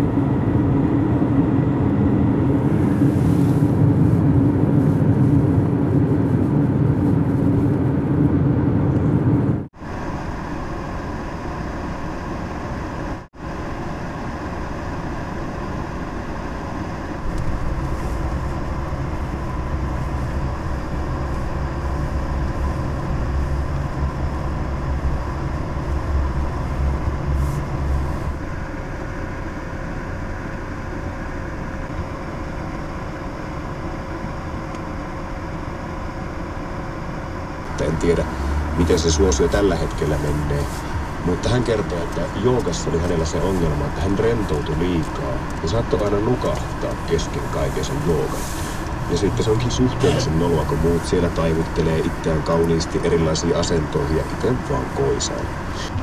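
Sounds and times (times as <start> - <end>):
car road and engine noise: 0.0 - 56.0.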